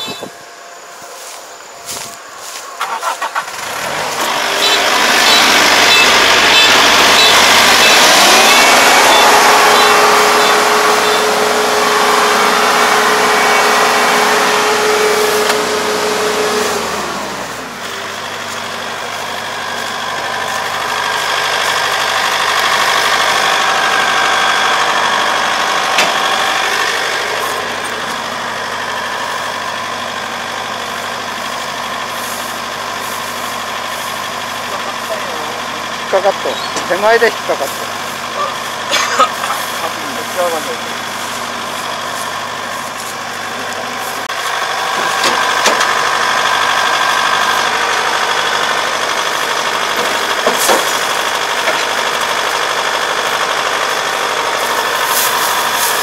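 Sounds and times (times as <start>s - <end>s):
combine harvester engine: 0.0s - 56.0s.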